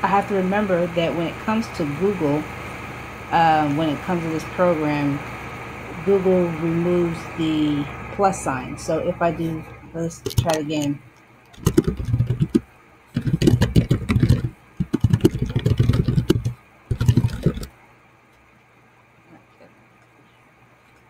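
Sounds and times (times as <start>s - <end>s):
typing on computer keyboard: 11.5s - 12.6s, 13.2s - 17.7s.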